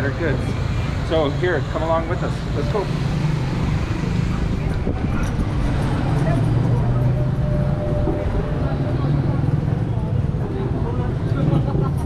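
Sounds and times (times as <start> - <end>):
street noise: 0.0 - 12.0
vehicle engines running: 0.0 - 12.0.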